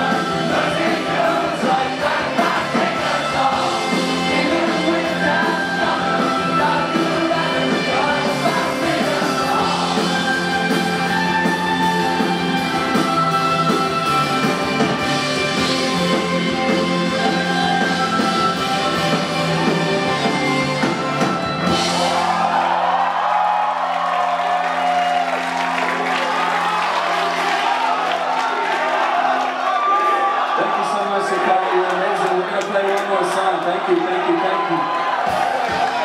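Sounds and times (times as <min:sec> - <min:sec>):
electric guitars and band chords: 0:00.0 - 0:23.1
crowd cheering and whooping: 0:21.1 - 0:36.0.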